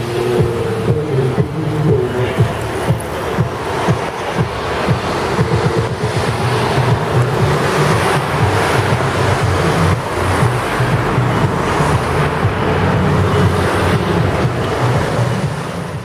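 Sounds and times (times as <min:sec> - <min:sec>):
street and crowd noise: 0:00.0 - 0:16.0
wind buffeting microphone: 0:00.0 - 0:16.0.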